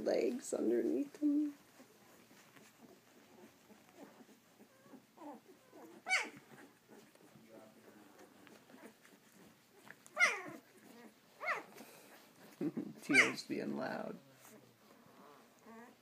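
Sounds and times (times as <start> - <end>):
puppies whimpering: 1.4 - 13.5, 14.3 - 16.0
high puppy cries: 1.6 - 13.4.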